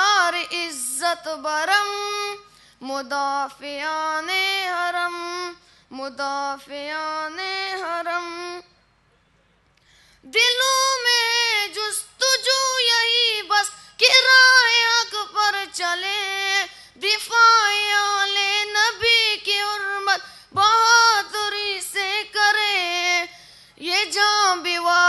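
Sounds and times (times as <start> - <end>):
boy singing unaccompanied: 0.0 - 8.7, 10.3 - 25.0.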